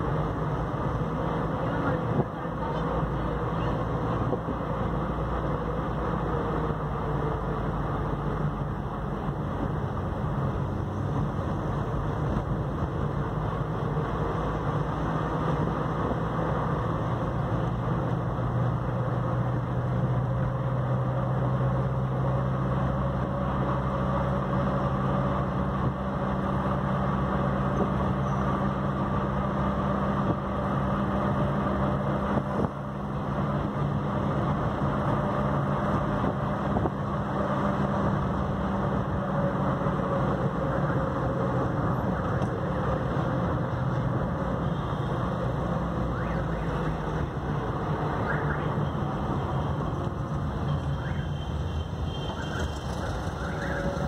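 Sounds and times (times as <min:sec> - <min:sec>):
car engine and tyre hum: 0:00.0 - 0:54.0.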